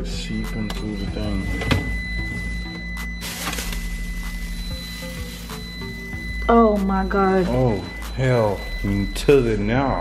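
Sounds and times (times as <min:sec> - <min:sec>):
background music: 0:00.0 - 0:10.0
steady high electronic tone: 0:00.0 - 0:10.0.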